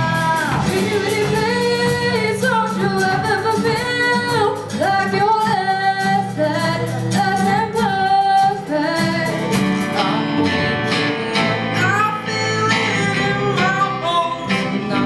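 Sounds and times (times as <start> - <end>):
acoustic guitar: 0.0 - 15.0
woman singing into a microphone: 0.0 - 15.0.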